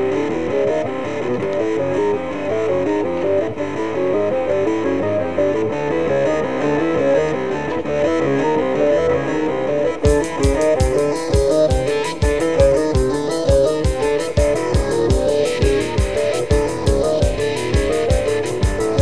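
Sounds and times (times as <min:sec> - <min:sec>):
progressive rock instrumental: 0:00.0 - 0:19.0
drums with cymbal strokes: 0:10.1 - 0:19.0.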